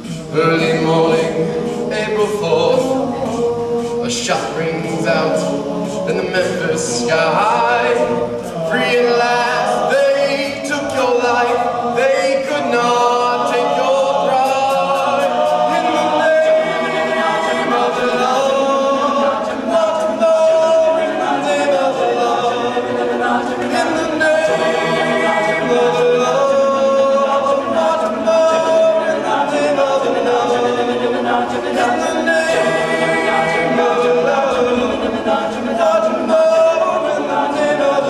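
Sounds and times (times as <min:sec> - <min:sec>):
male a cappella harmony singing: 0:00.0 - 0:38.0.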